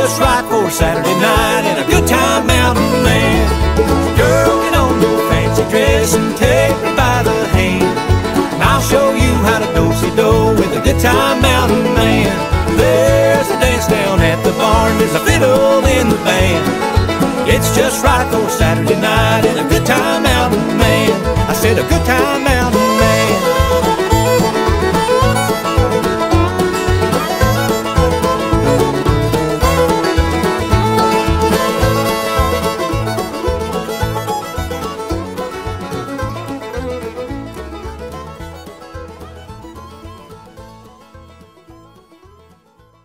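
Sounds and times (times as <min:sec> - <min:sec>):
bluegrass band playing: 0:00.0 - 0:43.0.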